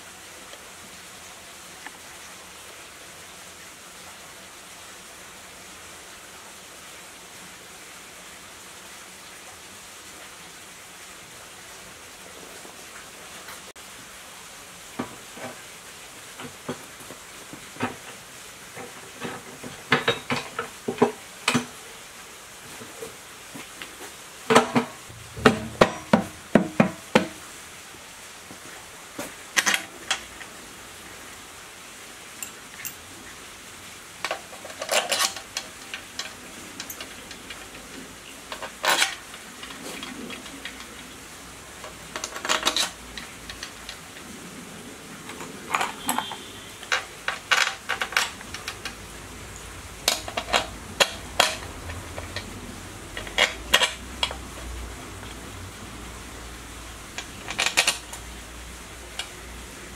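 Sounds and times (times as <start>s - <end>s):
metal clinks and knocks: 24.6s - 26.4s.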